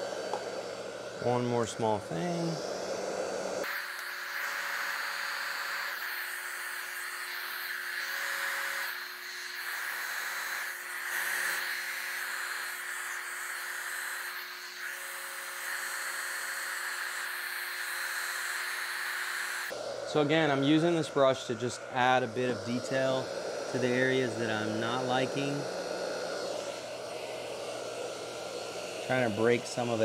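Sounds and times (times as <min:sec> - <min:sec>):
hair dryer running: 0:00.0 - 0:30.0.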